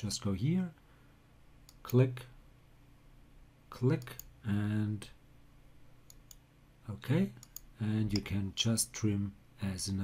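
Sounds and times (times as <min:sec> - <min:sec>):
low room hiss: 0:00.0 - 0:10.0
computer mouse clicks: 0:01.6 - 0:02.0, 0:06.0 - 0:06.4, 0:07.4 - 0:08.3.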